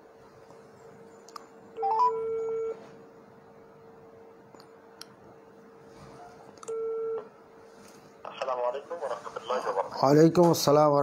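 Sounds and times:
rising short phone beeps: 1.8 - 2.8.

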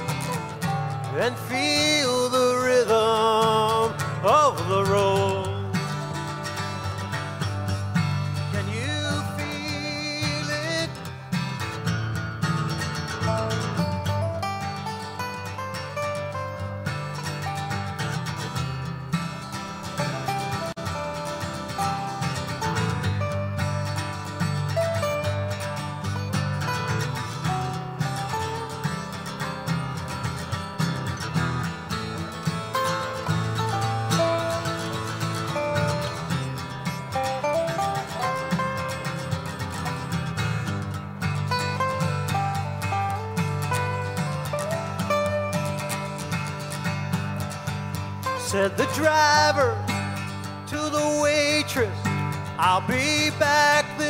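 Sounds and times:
picked acoustic guitar melody: 0.0 - 54.0
strummed guitar chords: 0.0 - 54.0.

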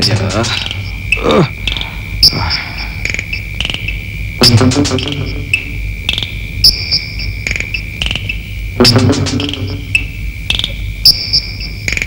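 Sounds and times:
crickets chirping: 0.0 - 12.0
low steady hum: 0.0 - 12.0.

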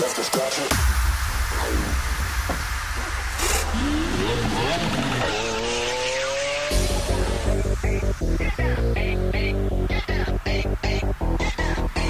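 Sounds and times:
hardstyle dance music: 0.0 - 12.0
heavy kick drum: 0.7 - 5.2
rising pitched sweep: 0.7 - 12.0.

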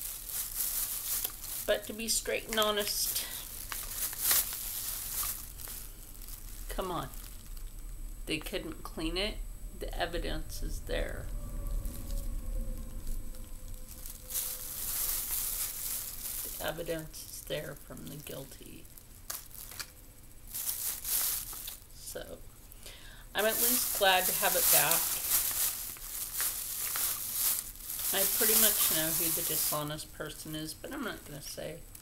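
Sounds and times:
rustling and crinkling: 0.0 - 8.9, 9.8 - 22.8, 23.4 - 32.0
steady hiss: 0.0 - 32.0
low handling rumble: 1.8 - 19.0.

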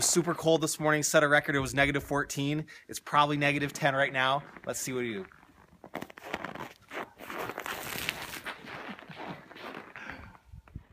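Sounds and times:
ice crackling and crunching: 3.5 - 10.4.

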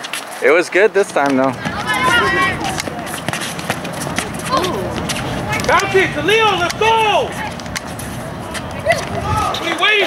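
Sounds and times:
players' footsteps scuffing: 0.0 - 9.4
ball dribbled and kicked: 2.7 - 5.3.

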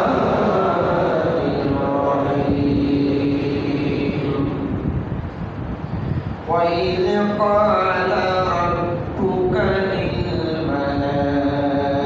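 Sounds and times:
chanted vocal note: 0.0 - 4.8
low rumbling background noise: 0.0 - 12.0.

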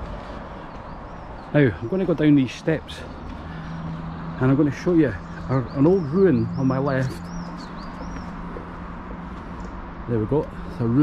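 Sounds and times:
songbird calling: 0.4 - 10.8.

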